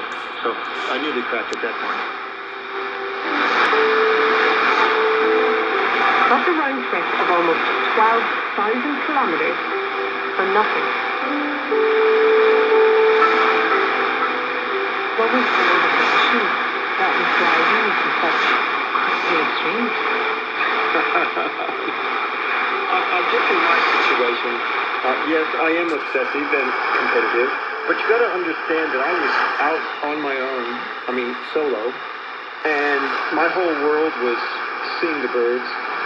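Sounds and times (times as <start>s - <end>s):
steady held tone: 0.0s - 34.2s
faint voice through static: 0.0s - 36.0s
radio static hiss: 0.0s - 36.0s.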